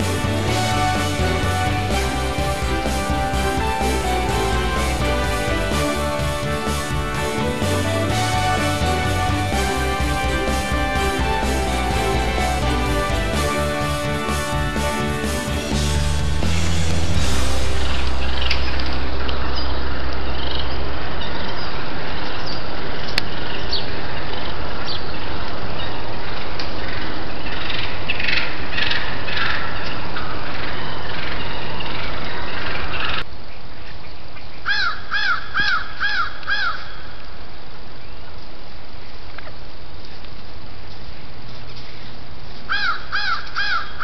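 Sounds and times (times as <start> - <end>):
outdoor microphone hiss: 0.0 - 44.0.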